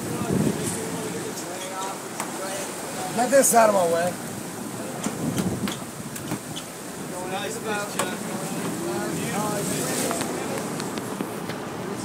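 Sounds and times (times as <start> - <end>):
sea water rushing: 0.0 - 12.0
wind: 0.0 - 12.0.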